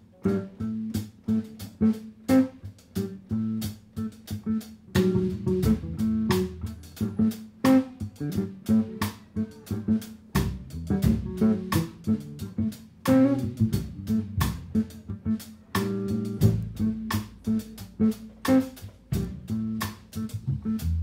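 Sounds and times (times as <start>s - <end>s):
drum kit steady beat: 0.0s - 21.0s
electric bass: 0.0s - 21.0s
electric guitar: 0.0s - 21.0s.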